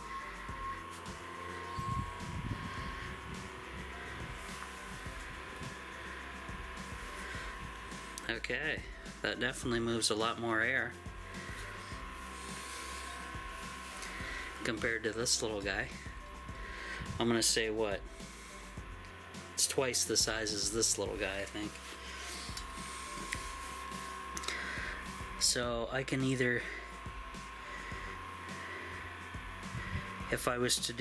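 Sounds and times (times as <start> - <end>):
background music: 0.0 - 31.0
desk fan motor whine: 0.0 - 31.0
fan air rush: 0.0 - 31.0.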